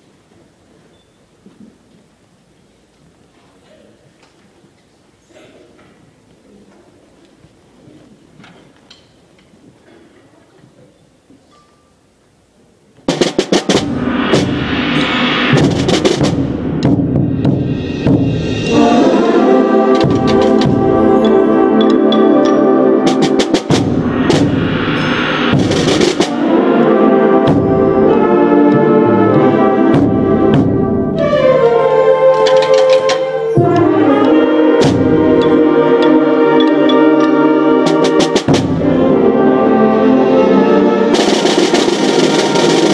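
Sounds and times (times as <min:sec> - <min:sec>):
percussion hits: 0:13.1 - 0:39.4, 0:40.2 - 0:42.9
concert band playing: 0:13.1 - 0:42.9.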